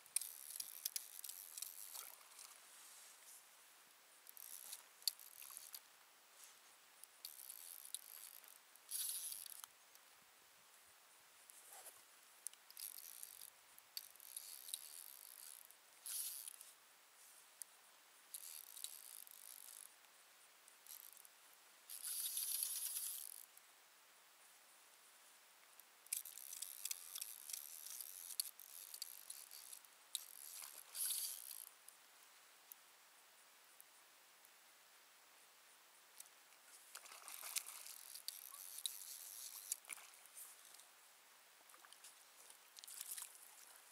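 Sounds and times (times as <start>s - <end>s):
fishing reel ticking: 0.1s - 2.5s, 4.2s - 5.8s, 7.2s - 9.7s, 12.4s - 16.6s, 18.3s - 19.9s, 20.8s - 21.3s, 21.9s - 23.5s, 26.0s - 31.7s, 37.0s - 40.8s.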